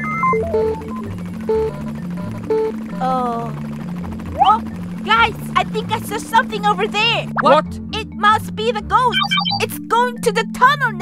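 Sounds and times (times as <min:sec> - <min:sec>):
synthesizer background music: 0:00.0 - 0:10.4.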